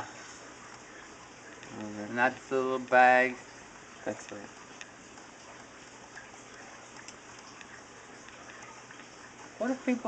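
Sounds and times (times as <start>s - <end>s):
computer clicks: 1.5s - 3.0s.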